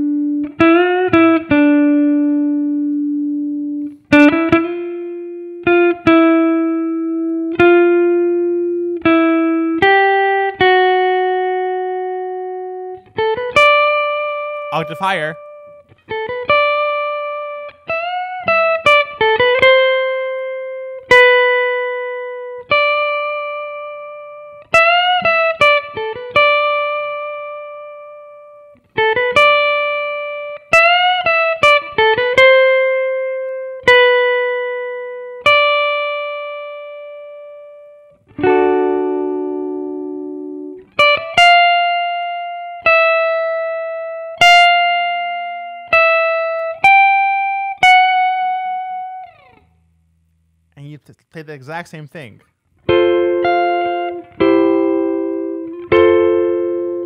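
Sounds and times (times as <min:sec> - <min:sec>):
electric guitar solo with bends: 0:00.0 - 0:49.6, 0:52.8 - 0:57.0.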